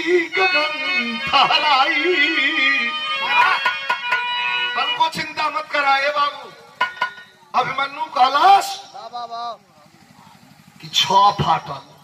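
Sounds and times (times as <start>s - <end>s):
man singing: 0.0s - 3.8s, 4.7s - 6.6s
faint pulsing engine drone: 4.6s - 12.0s.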